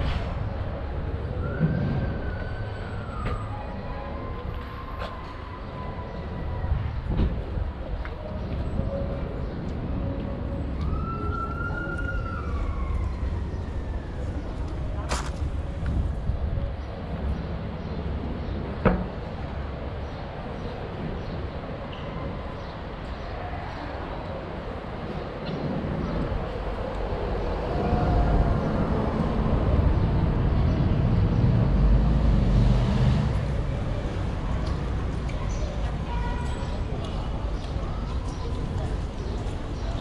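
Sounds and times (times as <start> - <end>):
low traffic rumble: 0.0 - 40.0
passers-by talking: 33.2 - 40.0.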